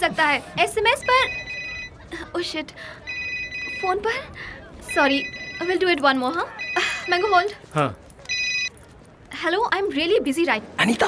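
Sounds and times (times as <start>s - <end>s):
phone ringtone: 0.8s - 2.1s, 2.9s - 7.6s, 8.3s - 8.8s.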